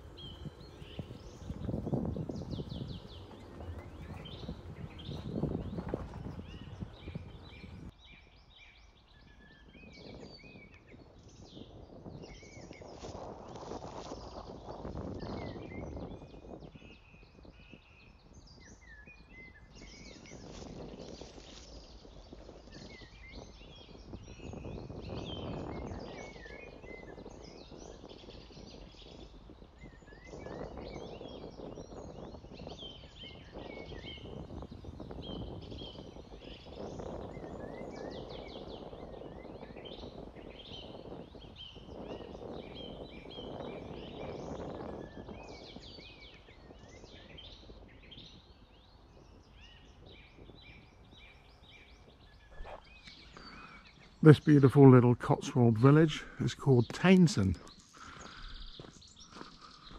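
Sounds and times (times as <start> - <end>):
low rushing noise: 0.0 - 7.9
songbirds singing and chirping: 0.0 - 59.9.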